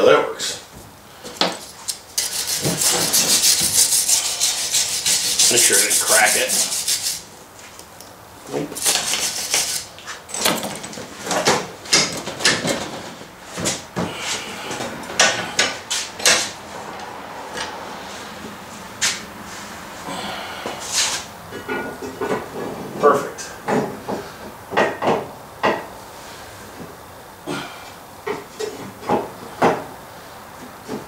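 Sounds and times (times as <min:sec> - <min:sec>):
metal clanks and knocks: 0:21.6 - 0:22.9.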